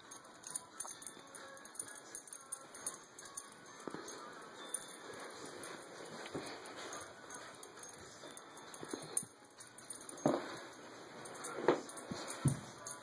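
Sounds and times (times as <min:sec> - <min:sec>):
light metallic jingling: 0:00.0 - 0:13.0.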